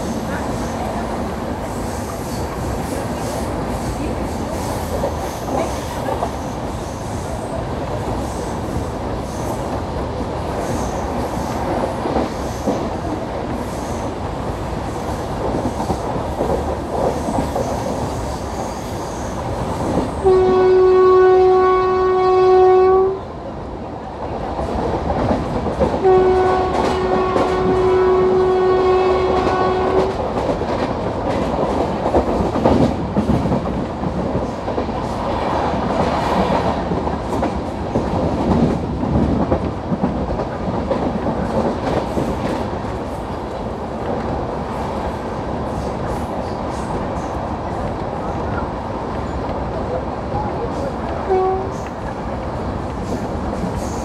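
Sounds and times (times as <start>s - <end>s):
train running at speed: 0.0s - 54.0s
locomotive horn blast: 20.2s - 23.3s, 26.0s - 30.2s, 51.3s - 51.8s.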